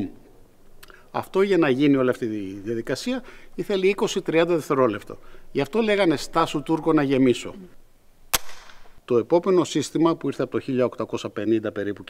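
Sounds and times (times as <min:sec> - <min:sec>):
flintlock metallic snap: 0:08.3 - 0:09.0.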